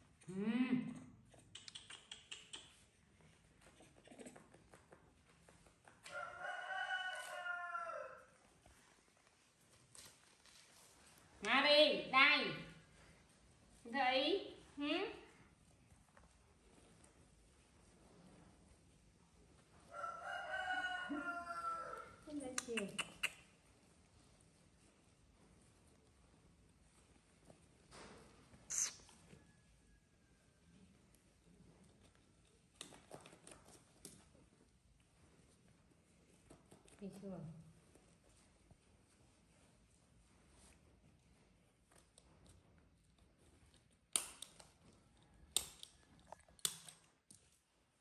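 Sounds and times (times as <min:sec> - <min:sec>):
woman humming: 0:00.3 - 0:01.0.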